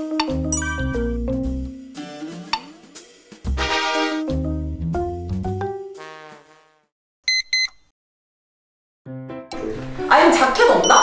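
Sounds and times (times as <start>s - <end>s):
short electronic beeps: 0.6s - 1.1s.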